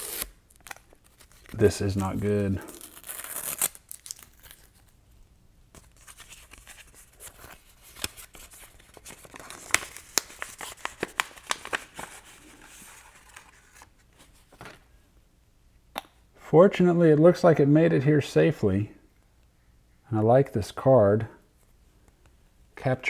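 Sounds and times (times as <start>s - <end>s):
paper envelope tearing: 0.0s - 4.7s.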